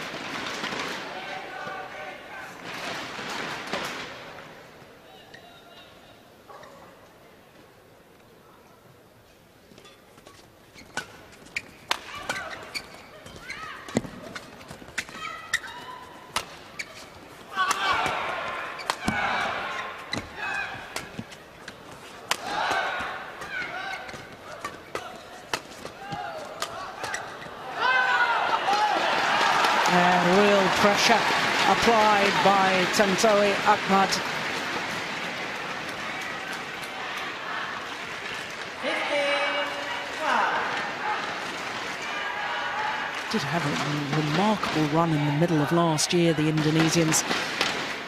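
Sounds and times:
shoes squeaking on court: 9.7 - 27.7
crowd cheering and shouting: 17.6 - 21.0, 26.0 - 34.3, 35.6 - 43.7
racket striking shuttlecock: 20.9 - 27.4.

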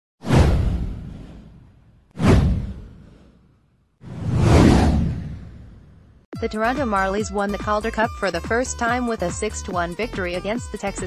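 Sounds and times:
deep boom: 0.2 - 3.1
swoosh: 0.2 - 6.2.

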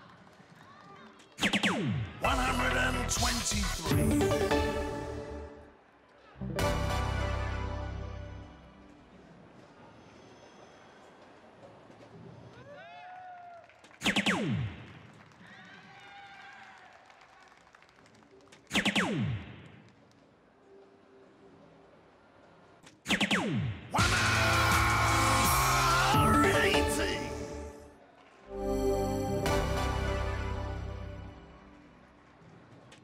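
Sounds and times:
electronic fanfare: 6.5 - 8.6, 28.5 - 31.6.

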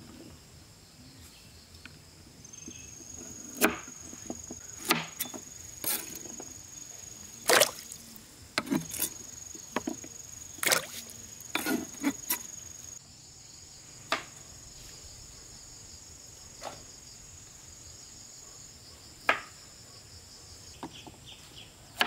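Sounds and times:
high insect drone: 0.0 - 22.0
figs splashing into water: 7.4 - 8.2, 10.6 - 11.1.

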